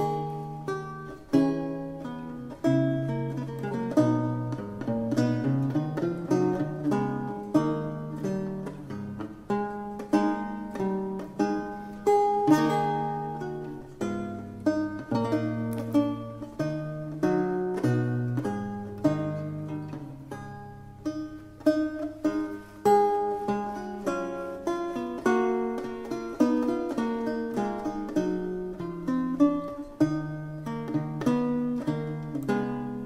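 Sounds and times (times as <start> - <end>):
solo lute music: 0.0 - 33.0.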